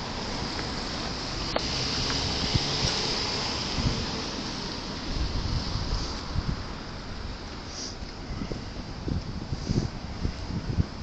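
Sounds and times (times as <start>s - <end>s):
traffic hiss and rumbles: 0.0s - 11.0s
wind buffeting microphone: 1.4s - 11.0s.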